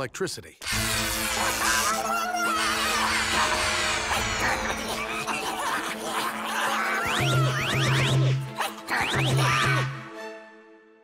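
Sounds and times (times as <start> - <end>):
high chittering cackling voices: 0.6 - 10.0
cartoon background music: 0.6 - 11.0.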